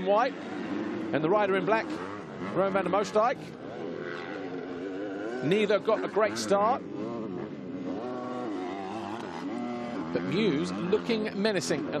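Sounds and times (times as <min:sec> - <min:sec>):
motocross bike engines revving: 0:00.0 - 0:12.0.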